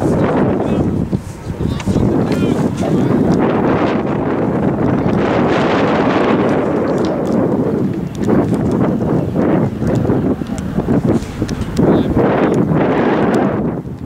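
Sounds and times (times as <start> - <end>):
wind buffeting microphone: 0.0 - 14.0.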